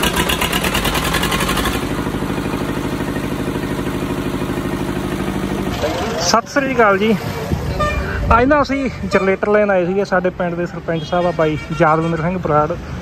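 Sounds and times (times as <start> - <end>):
diesel generator engine running: 0.0 - 10.7.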